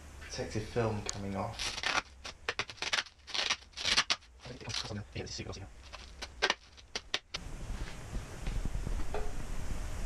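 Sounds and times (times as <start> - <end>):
plastic film peeling and crackling: 1.1 - 7.4.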